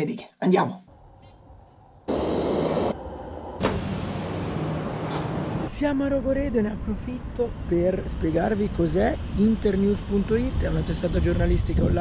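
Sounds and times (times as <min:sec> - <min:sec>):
train rumbling and hissing: 0:01.0 - 0:12.0.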